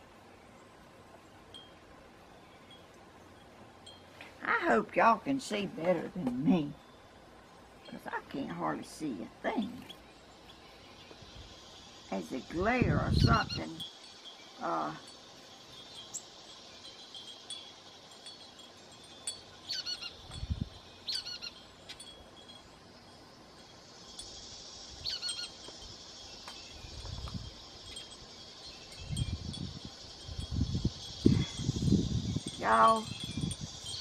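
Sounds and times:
wind chimes tinkling: 0:01.5 - 0:05.4, 0:10.0 - 0:34.0
falling bird calls: 0:13.1 - 0:34.0.

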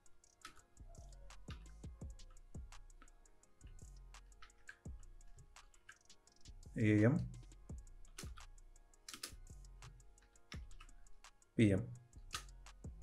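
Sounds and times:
computer keyboard typing: 0:09.1 - 0:09.5, 0:10.3 - 0:11.1.

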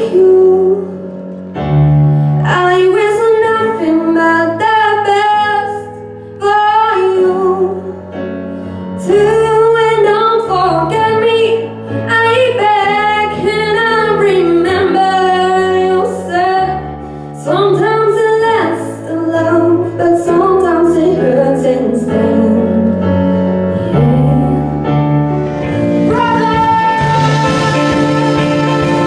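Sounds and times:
woman singing a slow ballad: 0:00.0 - 0:01.0, 0:02.4 - 0:07.9, 0:09.0 - 0:16.8, 0:17.4 - 0:23.1, 0:23.7 - 0:25.1, 0:26.1 - 0:28.8
backing chords: 0:22.6 - 0:29.0.

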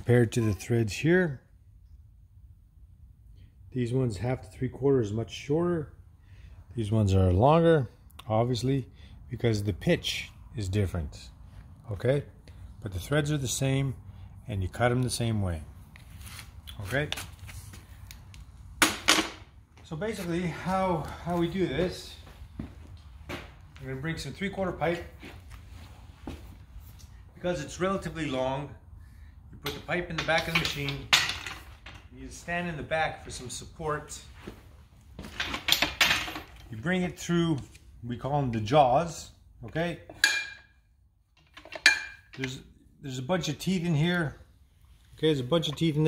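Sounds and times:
steel pipe clinking against metal: 0:40.1 - 0:40.7, 0:41.6 - 0:42.5.

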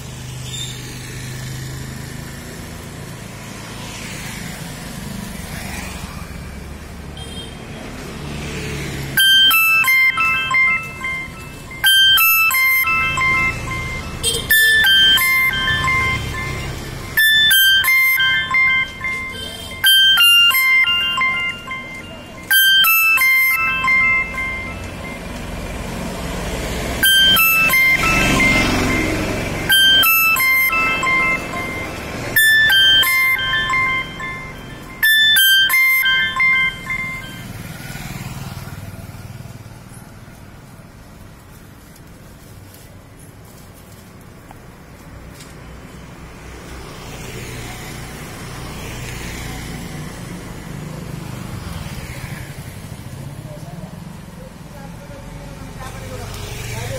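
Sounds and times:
electronic beeping jingle: 0:08.5 - 0:38.8.

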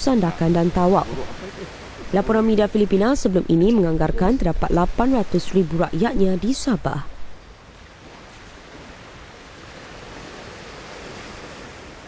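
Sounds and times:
surf washing on sandy beach: 0:00.0 - 0:06.8, 0:07.4 - 0:12.0
wind: 0:00.0 - 0:12.0.

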